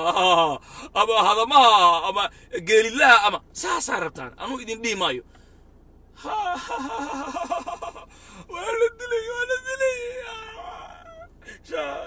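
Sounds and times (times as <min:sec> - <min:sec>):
man laughing hard: 0:00.0 - 0:00.6, 0:06.2 - 0:08.1.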